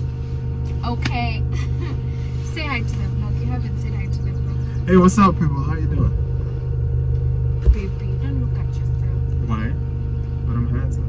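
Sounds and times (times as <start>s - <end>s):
low car cabin hum: 0.0s - 11.0s.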